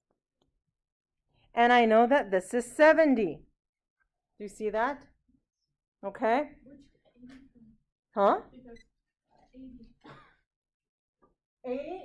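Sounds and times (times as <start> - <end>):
woman speaking: 1.6 - 3.4, 6.0 - 6.6, 8.2 - 8.8.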